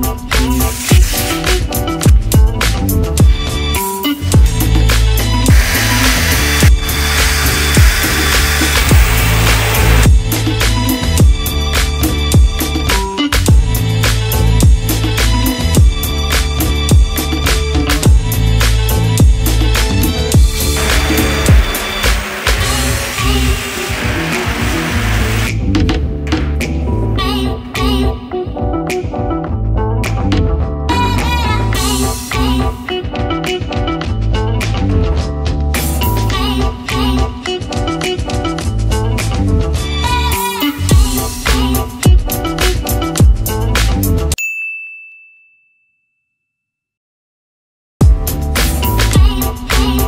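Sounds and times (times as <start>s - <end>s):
background music with a beat: 0.0s - 27.0s, 27.6s - 44.4s, 48.0s - 50.0s
drill router cutting acrylic: 5.5s - 10.0s, 20.7s - 25.5s
high bell-like ding: 44.4s - 46.8s.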